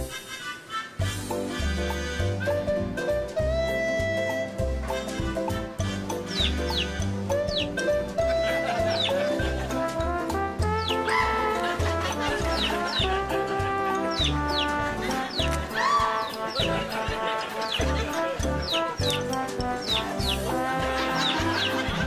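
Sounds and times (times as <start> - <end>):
jaunty music with pulsing bass: 1.0 - 22.0.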